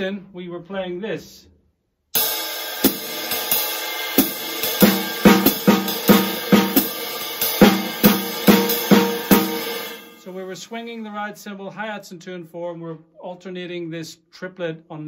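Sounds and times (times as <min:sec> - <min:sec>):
drum kit swing groove: 0:02.2 - 0:10.2.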